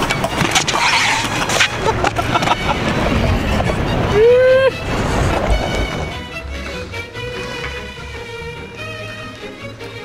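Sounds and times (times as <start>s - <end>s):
wind noise on microphone: 0.0s - 8.2s
bike rolling on concrete: 0.0s - 10.0s.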